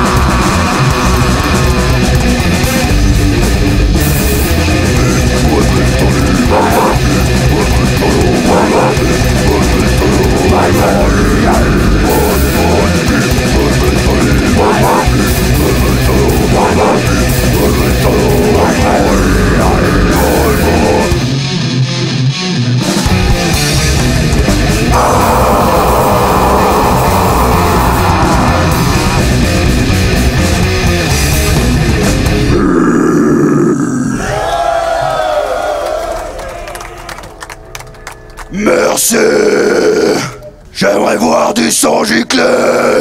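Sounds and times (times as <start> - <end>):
guttural growled vocal: 0.0 - 2.9, 4.7 - 21.3, 24.9 - 29.8, 32.4 - 34.4, 38.8 - 40.4, 42.2 - 43.0
death metal band playing live: 0.0 - 34.9.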